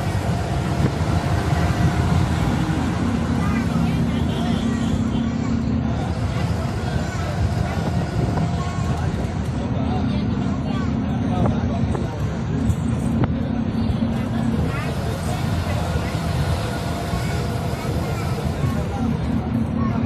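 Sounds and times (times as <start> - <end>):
bus diesel engine drone: 0.0 - 20.0
indistinct voices: 0.0 - 20.0
road rumble: 0.0 - 20.0.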